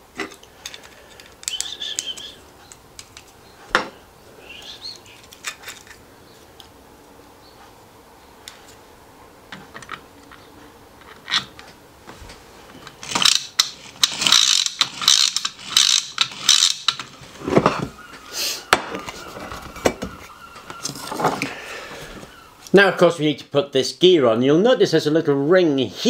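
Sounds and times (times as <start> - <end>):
plastic parts clicking: 0.1 - 3.4, 4.6 - 6.0, 12.8 - 17.2
plastic parts scraping: 0.1 - 3.4, 4.9 - 6.0, 12.7 - 18.1, 18.9 - 21.6.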